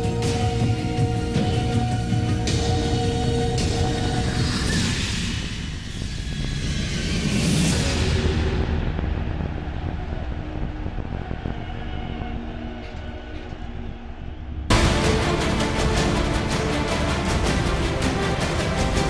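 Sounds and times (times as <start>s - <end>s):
low rumbling drone: 0.0s - 19.0s.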